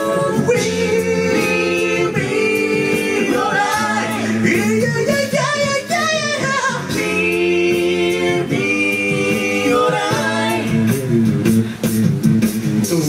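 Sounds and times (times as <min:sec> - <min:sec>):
lead voice singing with vibrato: 0:00.0 - 0:11.1
a cappella group singing: 0:00.0 - 0:11.4.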